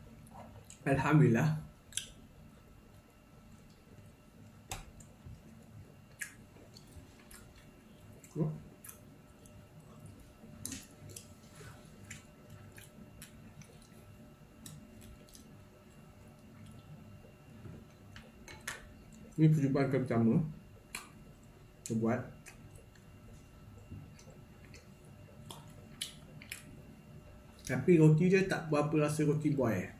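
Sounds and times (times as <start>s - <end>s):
person chewing bread: 0.1s - 0.8s, 1.8s - 19.3s, 20.8s - 27.7s
wet mouth clicks: 1.9s - 2.2s, 6.1s - 7.6s, 24.2s - 26.7s.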